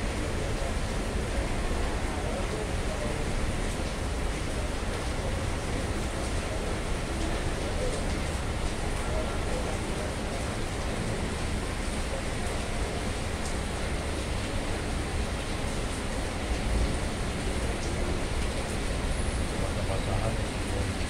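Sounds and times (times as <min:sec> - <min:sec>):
heavy rain falling: 0:00.0 - 0:21.0.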